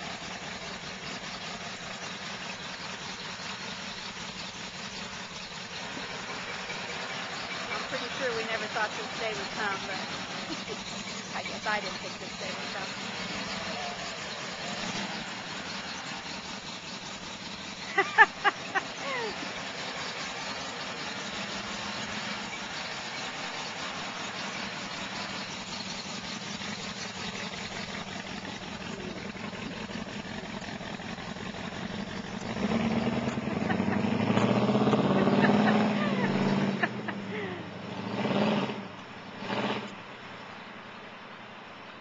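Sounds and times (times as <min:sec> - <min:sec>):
truck engine passing by: 0:00.0 - 0:40.1.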